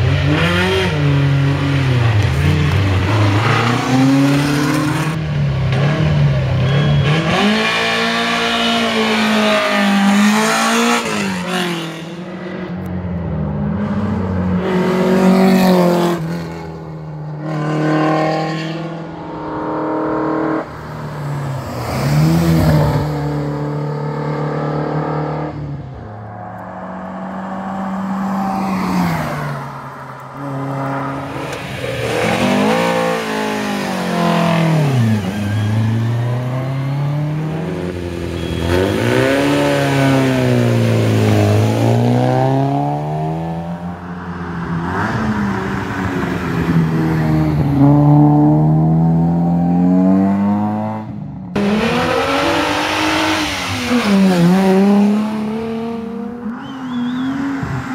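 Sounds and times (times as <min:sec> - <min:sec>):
race car engines accelerating: 0:00.0 - 0:57.9.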